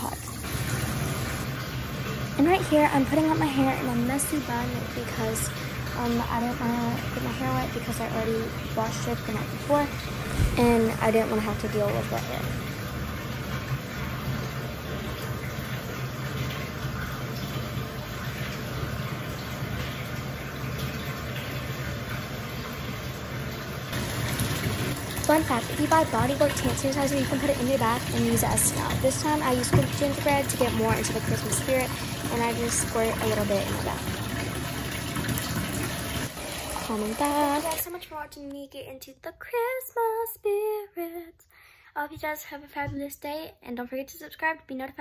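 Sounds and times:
tap water filling bathtub: 0.0 - 38.6.

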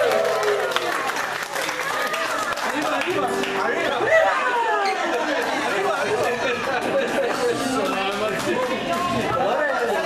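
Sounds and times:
men talking: 2.7 - 10.0
men laughing: 3.8 - 8.1.

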